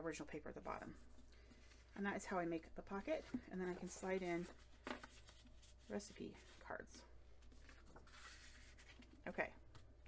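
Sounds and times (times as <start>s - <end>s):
paper rustling: 2.9s - 9.9s.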